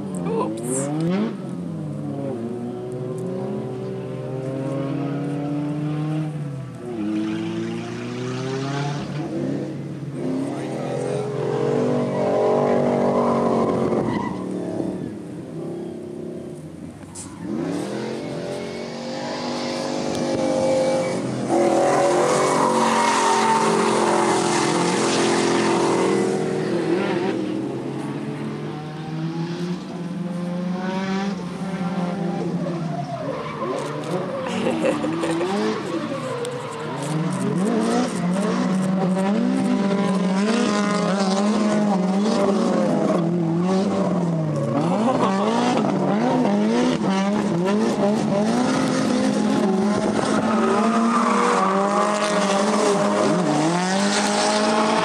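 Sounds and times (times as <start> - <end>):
car engine revving hard: 33.9 - 55.0.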